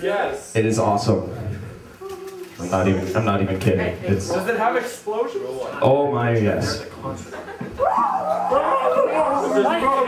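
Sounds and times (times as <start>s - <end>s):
people talking and calling out: 7.2s - 10.0s.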